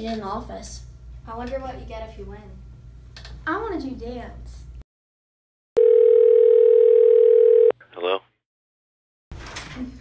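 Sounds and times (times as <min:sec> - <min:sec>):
steady electronic telephone tone: 0:05.8 - 0:07.8.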